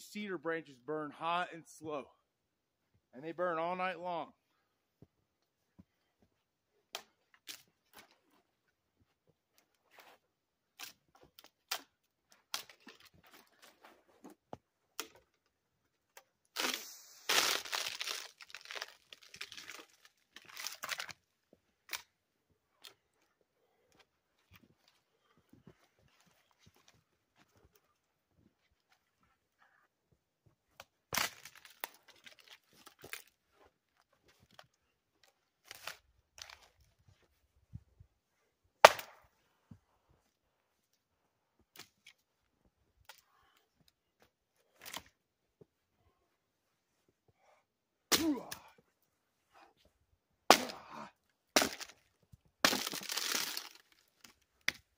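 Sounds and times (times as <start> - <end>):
dry branches snapping: 16.6 - 21.2, 50.5 - 50.9, 51.6 - 52.0, 52.6 - 54.8.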